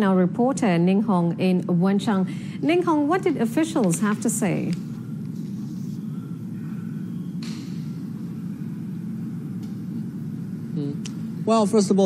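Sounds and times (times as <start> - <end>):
low background rumble: 0.0 - 11.9.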